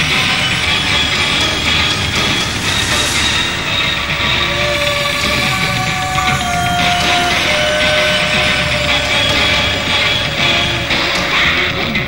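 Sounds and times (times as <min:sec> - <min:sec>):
dense steady rumbling: 0:00.0 - 0:12.0
held musical notes: 0:00.0 - 0:12.0.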